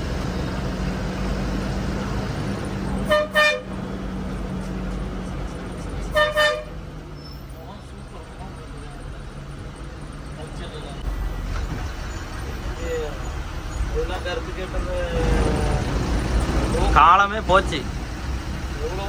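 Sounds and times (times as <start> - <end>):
diesel engine drone: 0.0 - 19.0
bus horn toot: 3.0 - 3.8, 6.1 - 6.8.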